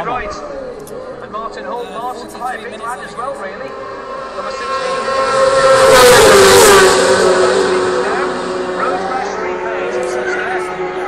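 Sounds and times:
motorcycle engine passing at speed: 3.2s - 11.0s.

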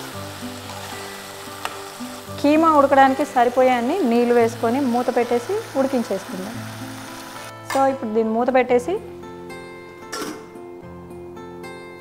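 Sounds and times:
meat sizzling in a pan: 0.0s - 7.5s
background music sustained notes: 0.0s - 12.0s.

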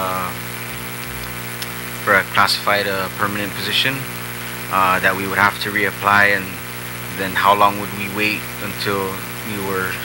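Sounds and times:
low room tone hum: 0.0s - 10.0s.

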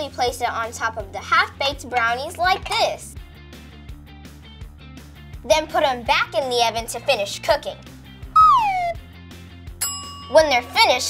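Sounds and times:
light background music: 0.0s - 11.0s
whistle-like tone sliding down: 8.4s - 9.0s.

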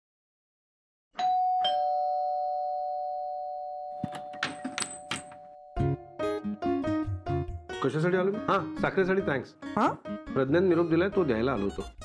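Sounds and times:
two-note doorbell chime: 1.2s - 4.4s.

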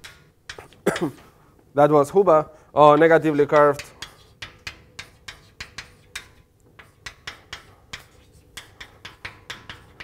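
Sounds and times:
chalk writing on a blackboard: 0.0s - 0.8s, 2.9s - 10.0s.

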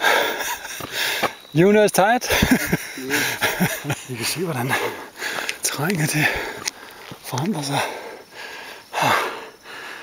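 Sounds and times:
person breathing hard: 0.0s - 1.4s, 4.7s - 7.2s, 7.8s - 10.0s.

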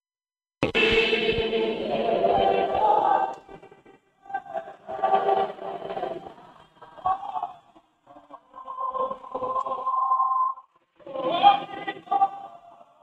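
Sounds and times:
group singing in chorus: 0.8s - 13.0s.

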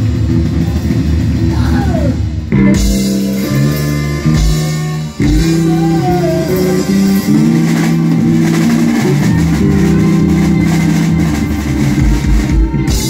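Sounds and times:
heavy drum hits: 0.0s - 13.0s
live blues band playing: 0.0s - 13.0s.

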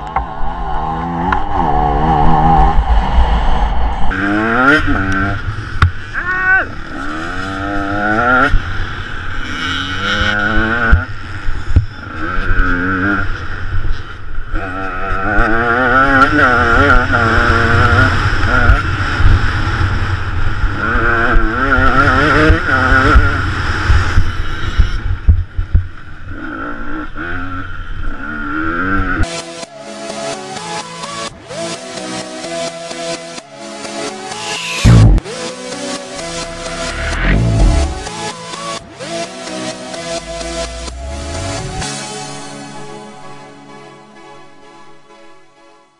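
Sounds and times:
motorcycle engine revving: 0.0s - 3.2s, 4.1s - 29.3s, 33.9s - 42.5s
wind rumble on microphone: 0.0s - 6.0s.

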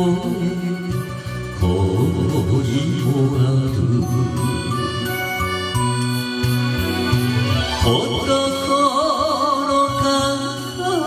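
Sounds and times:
man singing into microphone: 0.0s - 5.5s, 7.8s - 11.0s
karaoke backing track: 0.0s - 11.0s.

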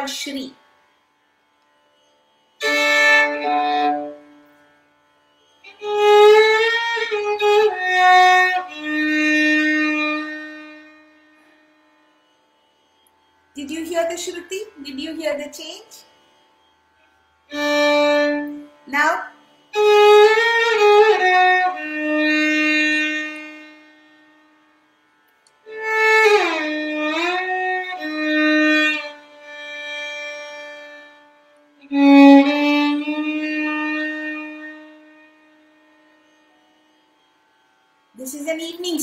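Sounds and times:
solo violin phrases: 2.6s - 4.7s, 5.6s - 12.3s, 17.5s - 24.8s, 25.6s - 36.7s.

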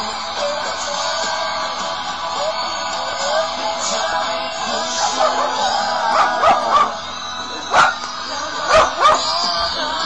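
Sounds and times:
pop-rock music from radio: 0.0s - 10.0s
dog barking: 4.9s - 7.0s, 7.7s - 8.0s, 8.6s - 9.4s.

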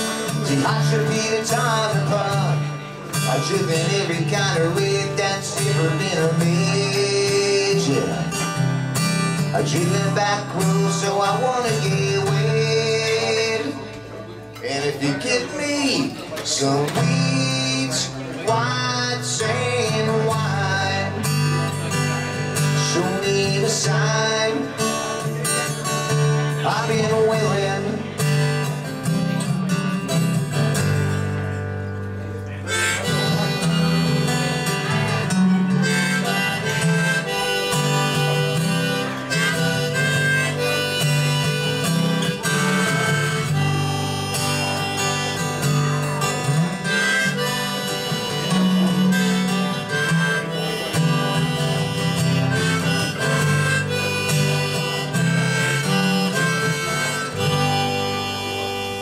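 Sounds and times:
harmonica solo: 0.0s - 13.8s, 32.4s - 59.0s
strummed acoustic guitar: 0.0s - 59.0s.

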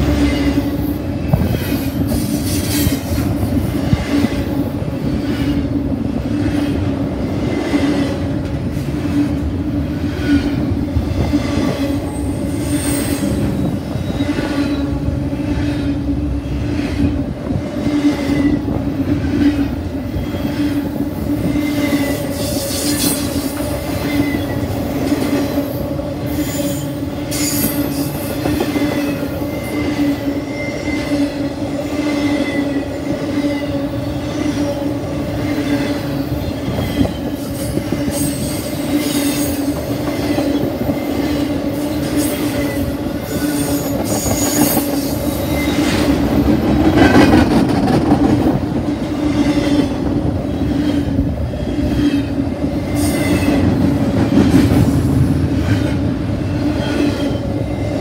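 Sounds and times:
steel wheels clattering on rail: 0.0s - 58.0s
high-pitched wheel squeals: 26.3s - 31.4s.

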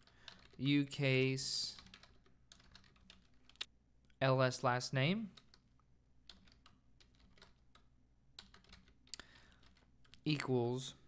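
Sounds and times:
typing on keyboard: 0.0s - 0.6s, 1.6s - 3.7s, 6.2s - 10.2s.

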